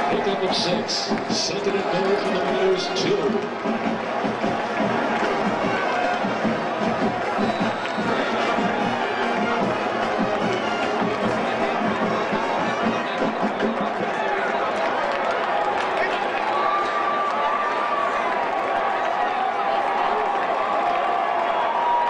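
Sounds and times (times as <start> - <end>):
crowd noise: 0.0 - 22.0
marching band playing: 0.1 - 14.2.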